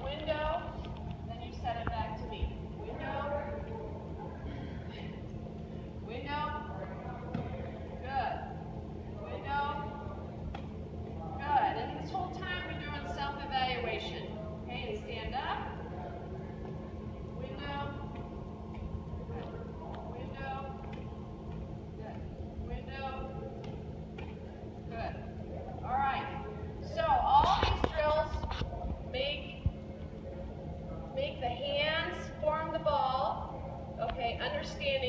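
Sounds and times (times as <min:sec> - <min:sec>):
people speaking in gym hall: 0:00.0 - 0:35.0.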